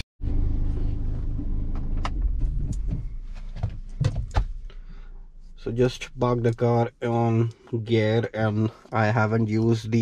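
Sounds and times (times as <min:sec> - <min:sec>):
car engine idling: 0:00.2 - 0:09.8.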